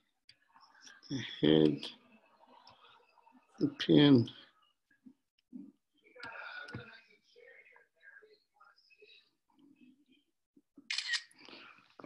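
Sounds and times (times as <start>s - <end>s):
camera shutter double click: 10.9s - 11.3s.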